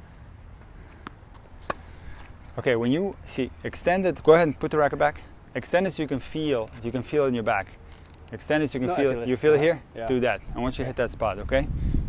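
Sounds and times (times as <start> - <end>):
tennis ball bouncing: 0.9 - 2.4
racket striking ball: 1.0 - 1.9.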